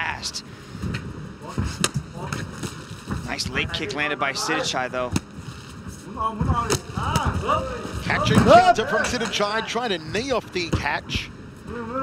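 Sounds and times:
faint voices: 0:05.9 - 0:12.0.

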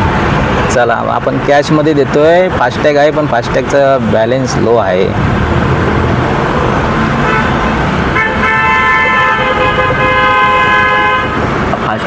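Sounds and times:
cars idling: 0:00.0 - 0:12.0
vehicle horn blast: 0:07.2 - 0:11.4.

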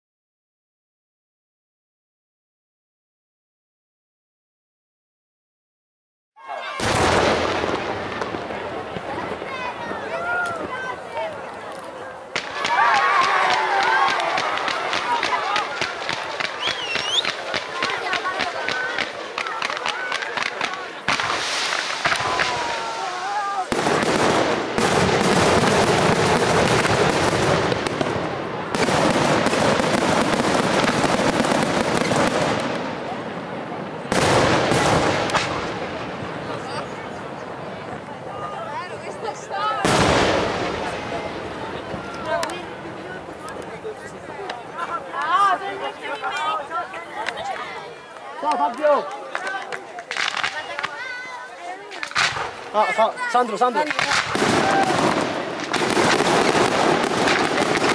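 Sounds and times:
firework launch reports: 0:06.6 - 0:47.6, 0:48.2 - 0:57.9
fireworks bursting: 0:06.7 - 0:38.3, 0:39.0 - 0:46.3, 0:47.1 - 0:57.9.

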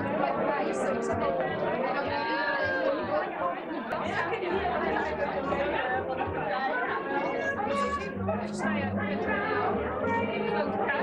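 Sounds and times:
women talking crowd chatter: 0:00.0 - 0:11.0.

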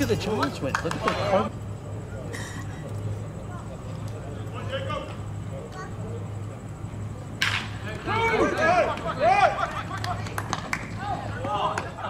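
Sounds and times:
people shouting and calling out: 0:07.8 - 0:10.2, 0:10.8 - 0:12.0.

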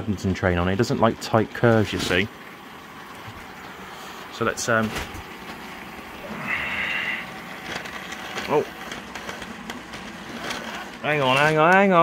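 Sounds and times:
model train whine: 0:00.0 - 0:12.0
wheels clicking on rails: 0:00.0 - 0:12.0.

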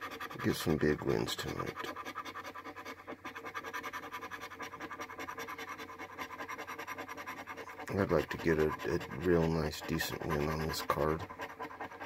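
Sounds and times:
coin scraping scratch ticket: 0:00.0 - 0:11.3.

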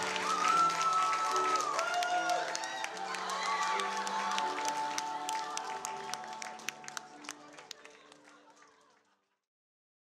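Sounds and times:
crowd clapping: 0:00.0 - 0:09.4
music: 0:00.0 - 0:09.4.

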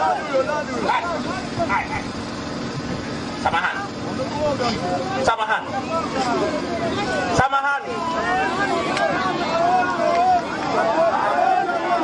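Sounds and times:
people talking: 0:00.0 - 0:02.2, 0:02.9 - 0:12.0.

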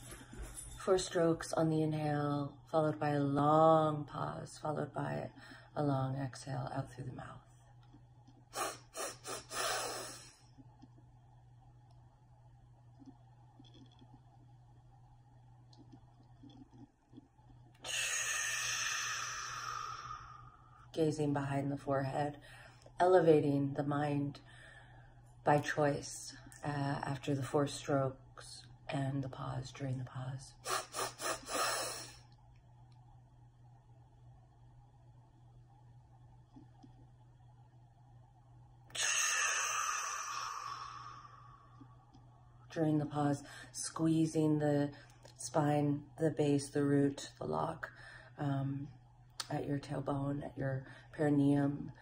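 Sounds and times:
woman exhaling slowly: 0:17.8 - 0:20.8, 0:38.9 - 0:41.8
woman exhaling through lips: 0:38.9 - 0:41.6.

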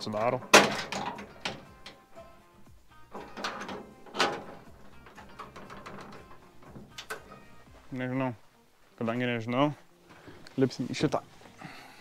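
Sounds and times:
quiet music: 0:00.0 - 0:12.0
door latch clicks and clunks: 0:00.5 - 0:02.0, 0:03.1 - 0:07.5.

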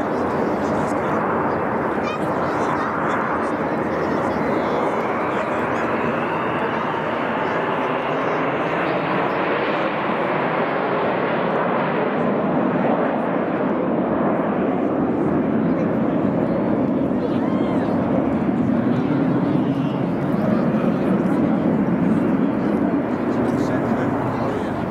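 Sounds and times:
chatter of spectators: 0:00.0 - 0:24.9.

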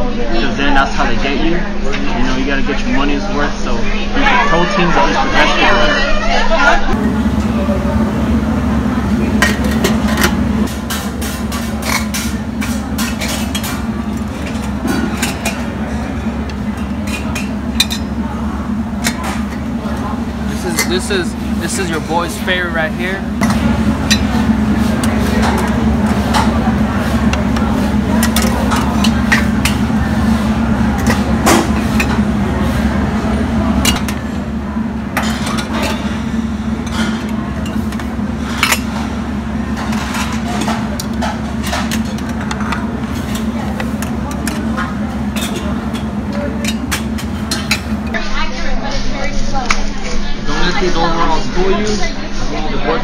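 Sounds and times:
background chatter: 0:00.0 - 0:53.0
steady low hum: 0:00.0 - 0:53.0.

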